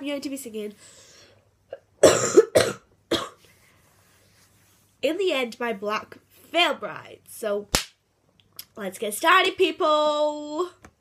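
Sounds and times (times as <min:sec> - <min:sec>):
girl coughing: 0:01.7 - 0:03.4.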